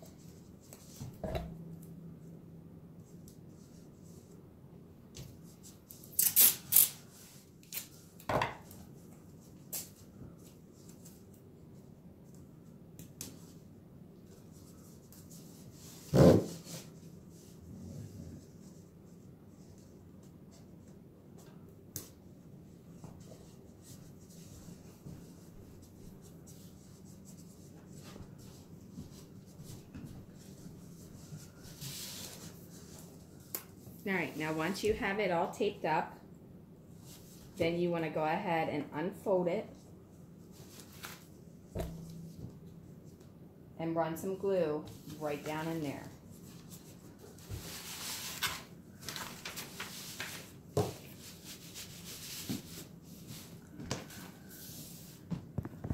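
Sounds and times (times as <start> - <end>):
faint room hum: 0.0 - 55.9.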